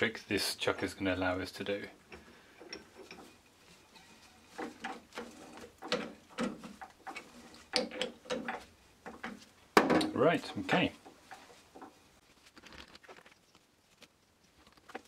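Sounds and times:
metallic clicks and scrapes: 2.0 - 9.5.

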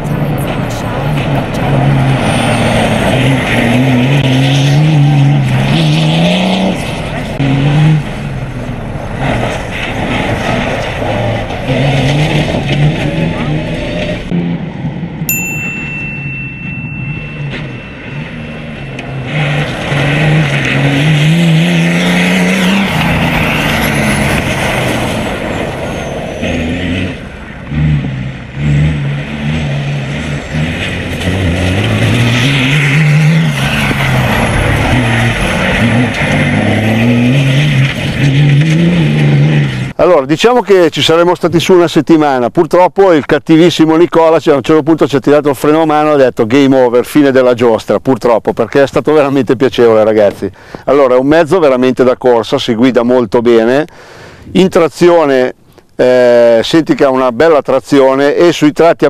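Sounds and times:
rally car engine revving: 0.0 - 15.1, 17.1 - 40.0
steady high tone: 15.3 - 20.1.

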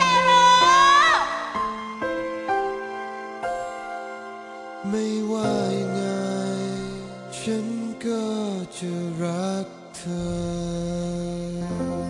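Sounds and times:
soft sustained backing music: 0.0 - 12.0
person singing a long note: 4.8 - 12.0.

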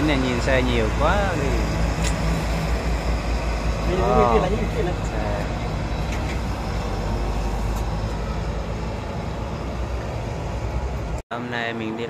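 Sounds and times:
heavy trucks rumbling past: 0.0 - 11.8.

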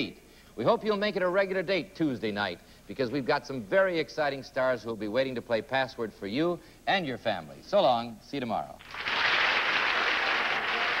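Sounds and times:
studio audience applauding: 8.8 - 11.0.

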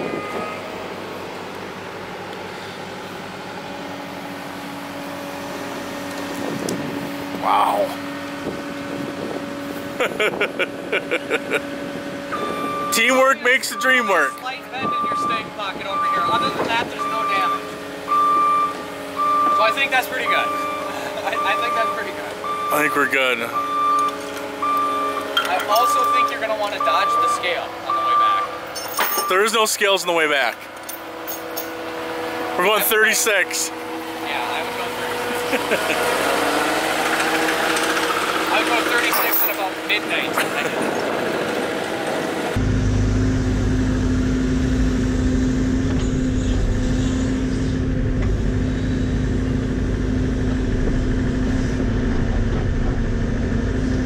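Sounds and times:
excavator diesel engine running: 0.0 - 29.5, 31.8 - 54.0
person laughing: 9.9 - 11.8, 20.8 - 21.4, 35.2 - 36.6, 40.3 - 41.2
excavator engine idling: 12.3 - 28.0.

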